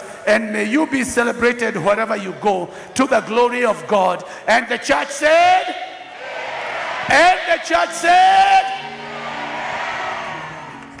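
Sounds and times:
crowd noise: 5.0 - 11.0
music with held chord: 8.7 - 11.0.

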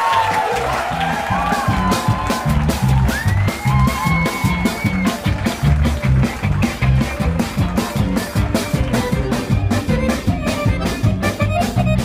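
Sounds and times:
bass: 0.0 - 12.0
drum kit: 0.0 - 12.0
electric guitar: 0.9 - 12.0
accordion: 3.5 - 12.0.

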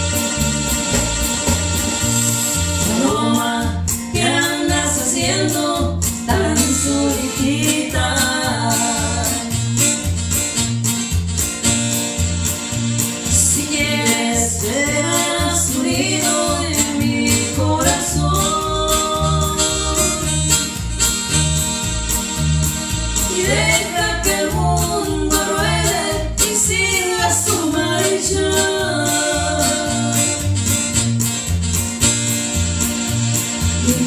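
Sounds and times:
steady beat: 0.0 - 4.0, 14.7 - 34.0
electric bass: 0.0 - 34.0
keyboard: 0.0 - 34.0
women singing together: 2.8 - 9.6, 13.3 - 20.5, 23.2 - 30.6.

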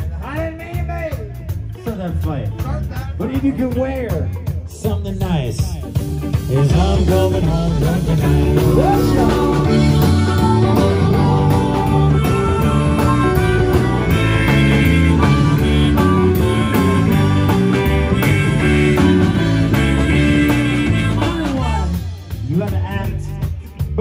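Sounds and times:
blues-rock band playing: 0.0 - 24.0
harmonica: 6.1 - 22.6.

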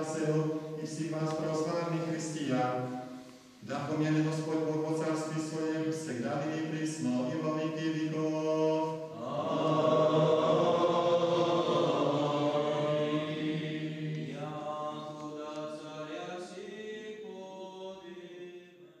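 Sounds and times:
men singing liturgical chant: 3.7 - 18.8
low vocal drone: 7.0 - 16.0.

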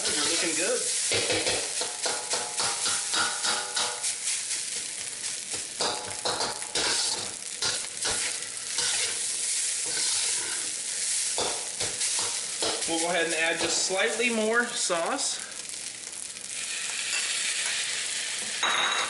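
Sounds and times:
metal spatula scraping wok: 0.0 - 0.8, 5.8 - 12.8, 16.6 - 18.6
rice sizzling in oil: 0.0 - 19.0.

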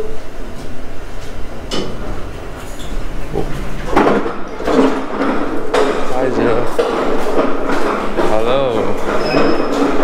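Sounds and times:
lift doors rumbling open: 0.0 - 10.0
lift door click: 1.6 - 6.0.

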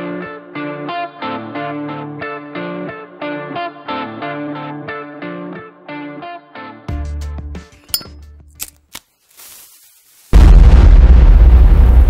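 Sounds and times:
deep boom sound effect: 10.4 - 12.0.

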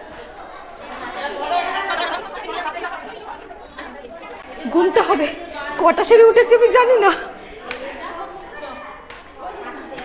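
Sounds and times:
people chattering in echoing stairwell: 0.0 - 10.0.

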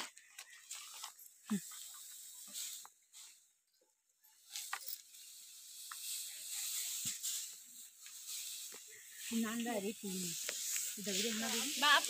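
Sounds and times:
dry grass rustling: 0.0 - 3.6, 4.3 - 12.0.

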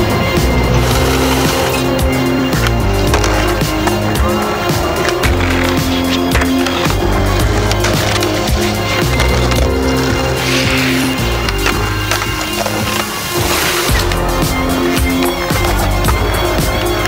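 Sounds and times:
music with steady beat: 0.0 - 17.0
skateboard wheels rolling on paving: 0.0 - 17.0.

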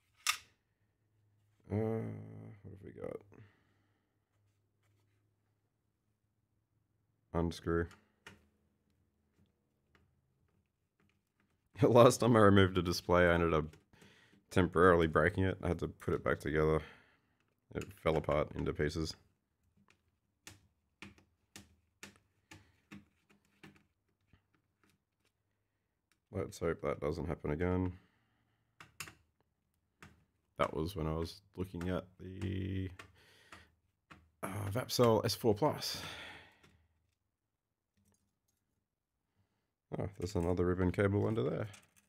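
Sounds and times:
breathy sigh: 35.9 - 36.7.

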